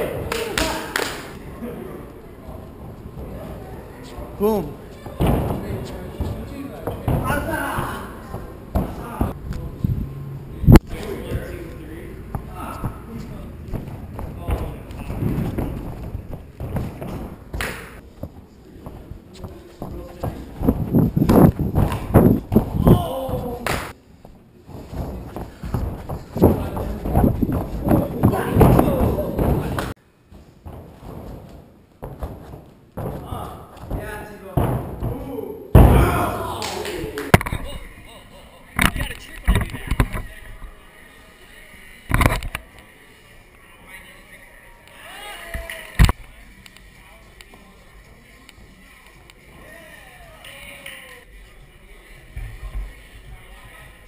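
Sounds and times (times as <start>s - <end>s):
voices talking and shouting: 0.0s - 15.9s, 18.6s - 24.0s, 33.2s - 54.0s
bodies thudding on padded floor: 24.7s - 35.2s.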